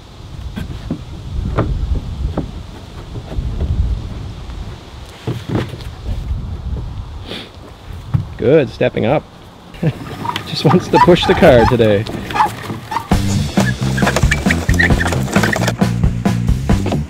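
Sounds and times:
wind rumbling on microphone: 0.0 - 15.6.

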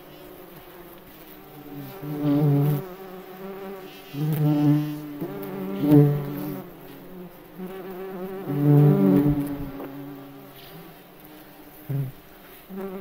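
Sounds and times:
beetle wings buzzing: 0.0 - 13.0.

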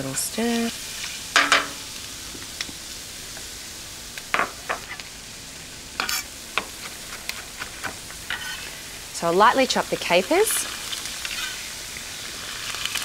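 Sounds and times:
garlic sizzling in oil: 0.0 - 13.0.

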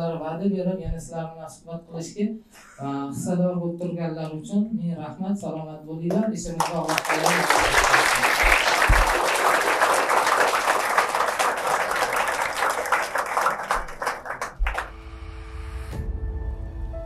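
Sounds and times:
audience applause: 6.6 - 15.0.

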